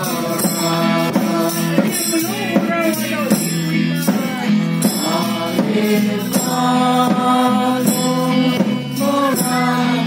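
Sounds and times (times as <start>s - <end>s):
group singing: 0.0s - 2.7s, 4.1s - 10.0s
amplified backing music: 0.0s - 10.0s.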